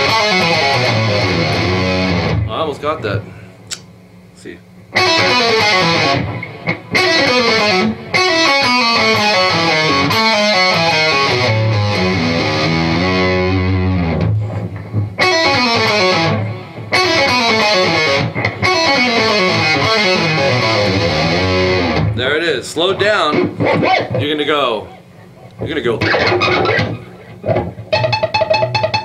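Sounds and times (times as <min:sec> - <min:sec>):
distorted electric guitar run: 0:00.0 - 0:03.3, 0:04.9 - 0:29.0.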